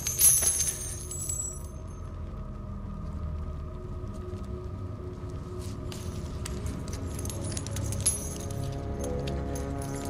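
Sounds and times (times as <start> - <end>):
metallic jingling and clinking: 0.0 - 2.0, 5.9 - 10.0
faint music: 0.0 - 10.0
low rumble: 0.0 - 10.0.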